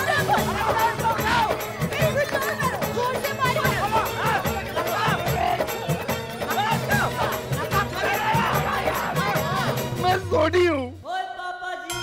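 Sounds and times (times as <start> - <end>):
people shouting: 0.0 - 9.9
background music: 0.0 - 12.0.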